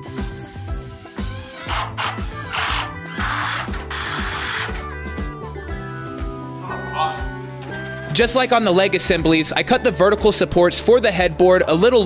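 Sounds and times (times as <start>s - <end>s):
background music: 0.0s - 12.0s
cordless drill driving screws: 0.9s - 4.9s.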